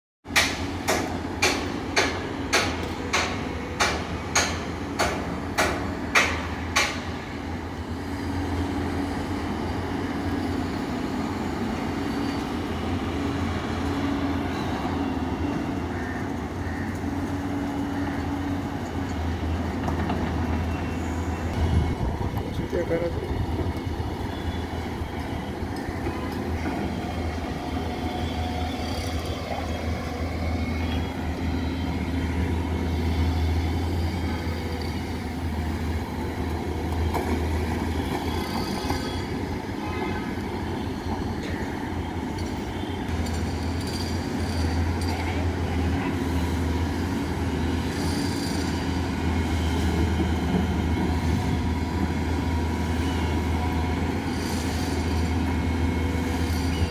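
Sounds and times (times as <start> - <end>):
excavator diesel engine droning: 0.6 - 56.9.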